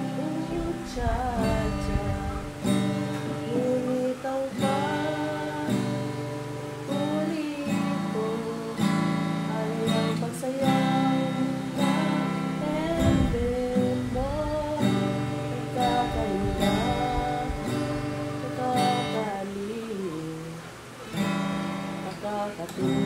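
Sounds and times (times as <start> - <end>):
acoustic guitar strumming: 0.0 - 23.0
woman singing: 0.0 - 23.0.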